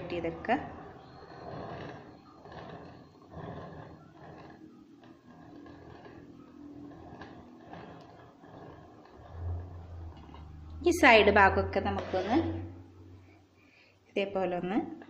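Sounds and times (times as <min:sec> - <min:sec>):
palette knife scraping cream: 0:01.0 - 0:09.4.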